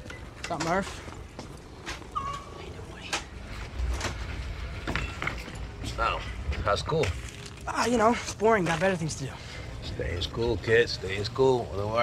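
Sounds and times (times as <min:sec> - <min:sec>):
low background hum: 0:00.0 - 0:12.0
brief high tone: 0:02.2 - 0:02.7.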